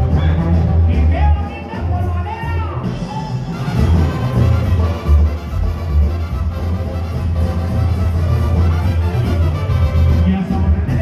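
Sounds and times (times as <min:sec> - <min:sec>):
live brass band music: 0:00.0 - 0:11.0
tuba and drum bass: 0:00.0 - 0:11.0.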